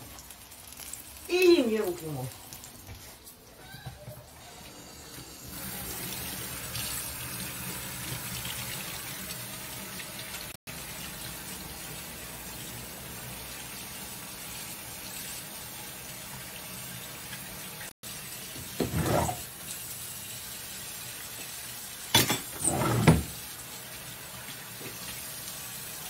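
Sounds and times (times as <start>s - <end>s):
tap water running into sink: 4.0s - 13.8s, 16.0s - 26.0s.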